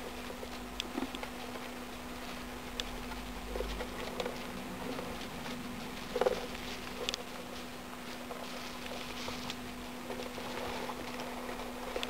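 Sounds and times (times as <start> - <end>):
low hum: 0.0 - 12.0
mice scurrying in bedding: 0.0 - 12.0.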